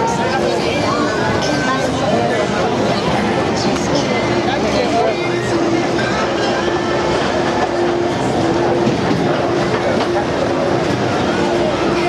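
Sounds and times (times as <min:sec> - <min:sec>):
crowd chatter: 0:00.0 - 0:12.0
fairground ride rumbling on rails: 0:00.0 - 0:12.0
steady hum: 0:00.0 - 0:12.0.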